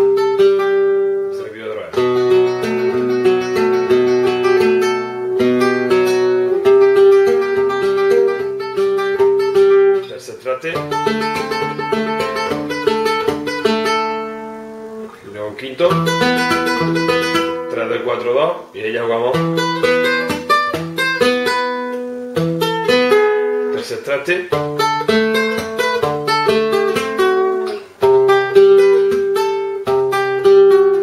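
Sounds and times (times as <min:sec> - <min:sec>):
flamenco guitar tremolo: 0:00.0 - 0:31.0.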